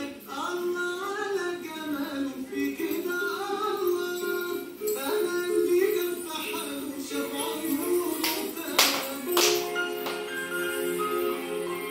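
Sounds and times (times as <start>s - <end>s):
dance music playing: 1.8s - 11.9s
sharp hand claps: 8.2s - 10.4s.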